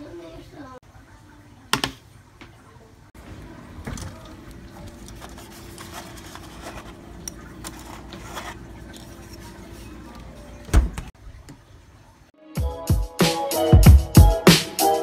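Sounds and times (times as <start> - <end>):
refrigerator humming: 3.2 - 12.2
refrigerator door thump: 10.7 - 11.1.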